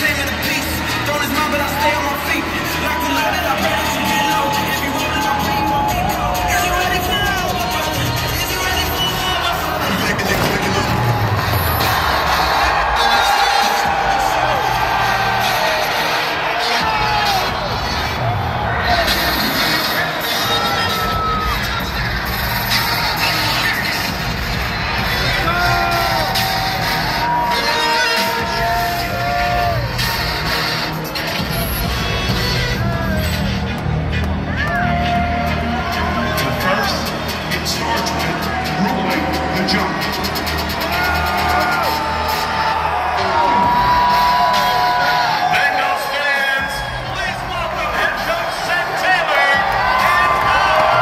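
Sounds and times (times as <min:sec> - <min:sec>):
crowd cheering and whooping: 0:00.0 - 0:51.0
loud stadium music: 0:00.0 - 0:51.0
pyrotechnic bangs: 0:10.0 - 0:12.7.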